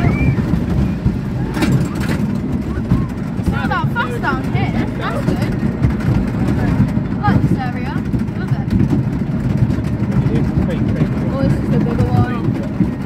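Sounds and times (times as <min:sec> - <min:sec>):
roller coaster clatters: 0:00.0 - 0:13.0
roller coaster rumbling on track: 0:00.0 - 0:13.0
wind buffeting microphone: 0:00.0 - 0:13.0.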